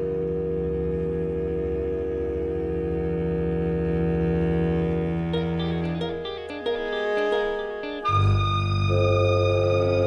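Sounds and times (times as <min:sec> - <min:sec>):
chamber orchestra low drone chord: 0:00.0 - 0:10.0.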